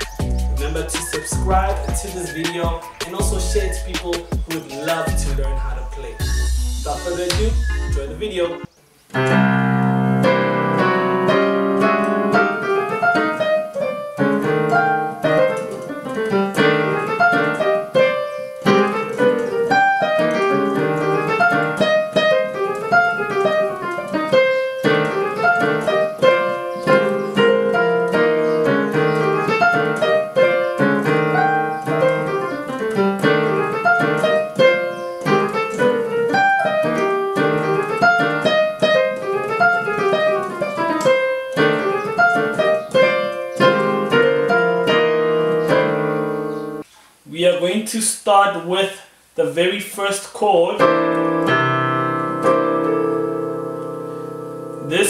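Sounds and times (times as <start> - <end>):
fast piano melody: 0.0 - 46.8, 50.8 - 55.0.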